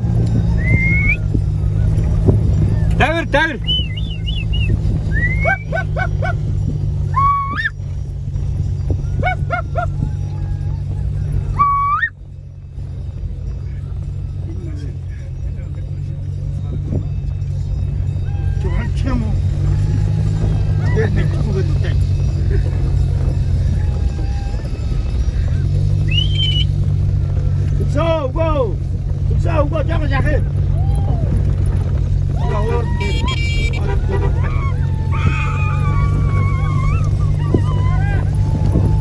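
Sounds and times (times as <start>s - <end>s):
car rumbling over rough ground: 0.0s - 39.0s.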